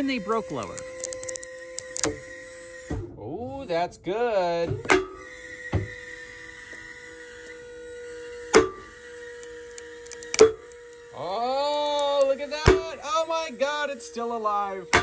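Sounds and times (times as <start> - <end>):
electric whine: 0.0 - 15.0
rope cracking under tension: 0.4 - 2.1
person exclaiming: 11.2 - 14.4.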